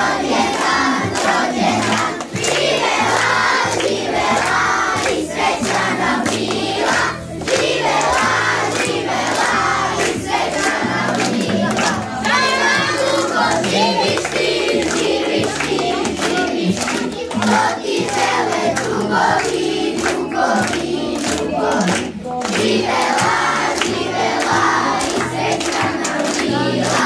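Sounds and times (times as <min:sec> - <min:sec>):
backing music with bass line: 0:00.0 - 0:27.0
children clapping along: 0:00.0 - 0:27.0
children singing: 0:00.0 - 0:27.0.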